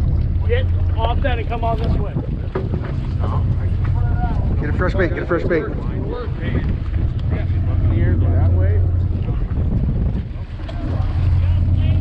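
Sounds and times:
boat engine rumble: 0.0 - 12.0
wind buffeting microphone: 0.0 - 12.0.

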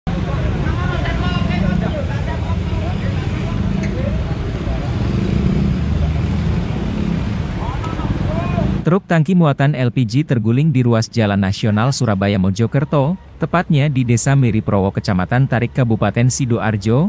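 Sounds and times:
traffic rumble: 0.1 - 17.0.

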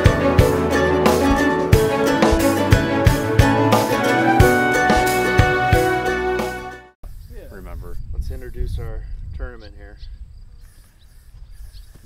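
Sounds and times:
wind rumble on microphone: 7.0 - 10.7
insects chirping: 7.0 - 12.0.

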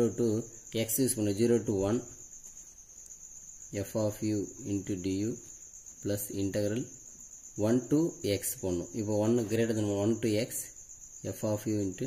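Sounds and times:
man talking: 0.0 - 2.2, 3.8 - 6.9, 7.6 - 12.0.

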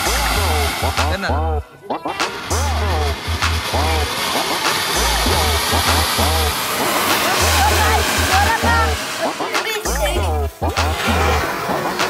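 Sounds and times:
firework fountain hissing spray: 0.0 - 12.0
song with heavy bass line: 0.0 - 12.0.

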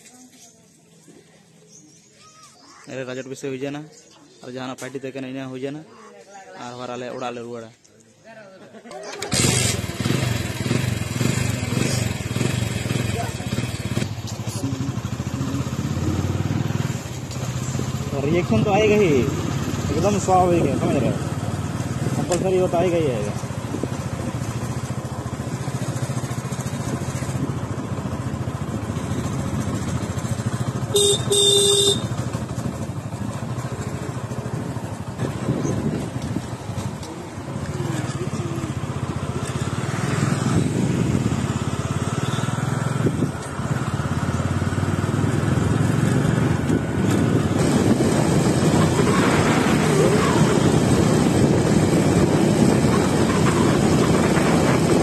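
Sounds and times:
motorcycle engine running: 9.3 - 55.0
road and wind noise: 9.3 - 55.0
vehicle horn: 30.8 - 32.3.

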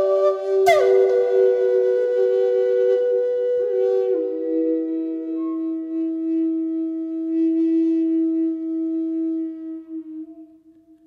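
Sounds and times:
flute holding a low note: 0.0 - 11.0.

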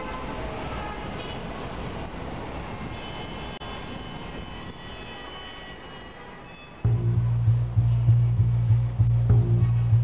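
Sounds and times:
rumbling background noise: 6.9 - 10.0.

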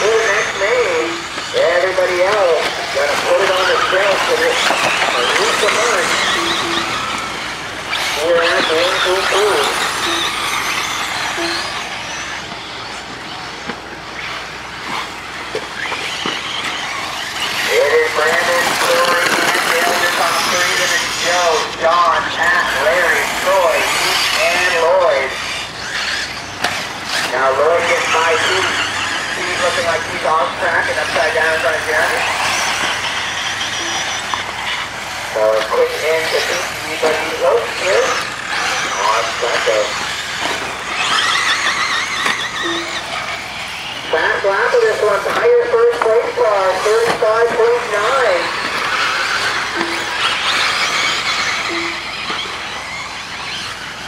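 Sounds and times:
rc car motors whining: 0.0 - 54.0
track noise: 0.0 - 54.0.

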